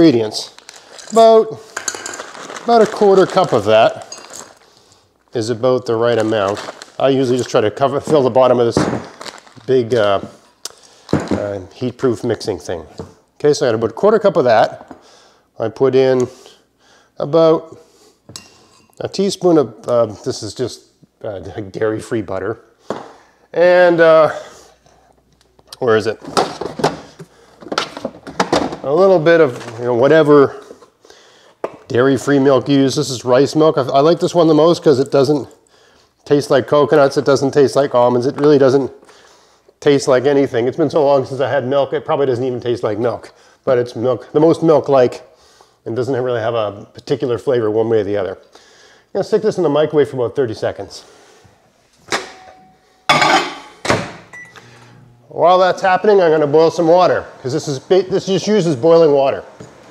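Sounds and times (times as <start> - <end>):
man talking: 0.0 - 1.8, 2.6 - 4.2, 5.3 - 10.4, 11.2 - 14.9, 15.6 - 16.6, 17.2 - 17.9, 19.0 - 22.7, 23.5 - 24.6, 25.7 - 26.3, 28.8 - 30.7, 31.9 - 35.6, 36.2 - 39.0, 39.8 - 48.5, 49.1 - 51.1, 55.3 - 59.6
glass cup clattering: 52.3 - 53.7
microwave humming: 53.9 - 59.9
keypad beeps: 54.3 - 54.7.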